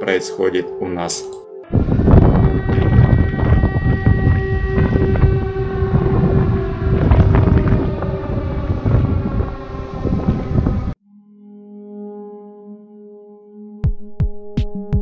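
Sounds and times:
siren sounding: 0:01.6 - 0:11.0
loud low rumble: 0:01.7 - 0:11.0
wind buffeting microphone: 0:01.7 - 0:11.0.

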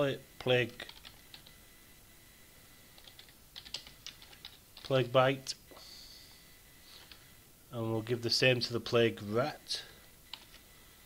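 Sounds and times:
computer keyboard typing: 0:00.8 - 0:01.5, 0:03.0 - 0:05.0, 0:10.3 - 0:10.6.

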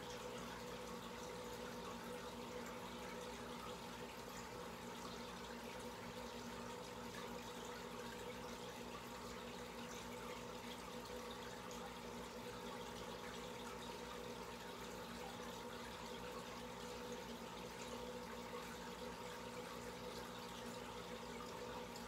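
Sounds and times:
aquarium water bubbling: 0:00.0 - 0:22.0.

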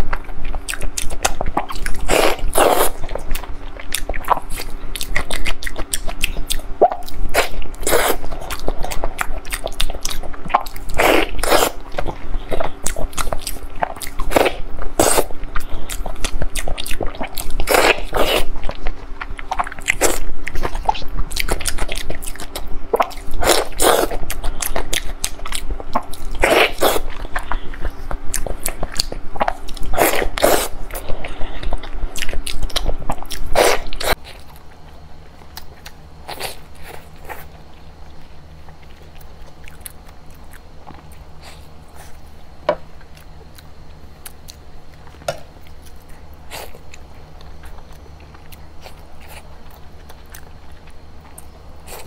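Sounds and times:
quiet chewing: 0:00.0 - 0:52.0.

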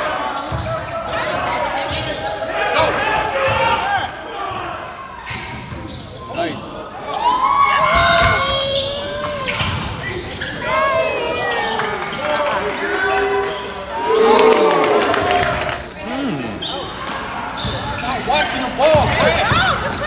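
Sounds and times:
sneakers squeaking: 0:00.2 - 0:12.4, 0:13.0 - 0:14.1, 0:16.2 - 0:20.0.

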